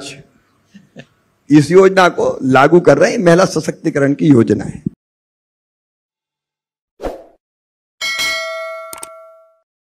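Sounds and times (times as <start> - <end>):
bell-like chime: 8.0 - 9.7.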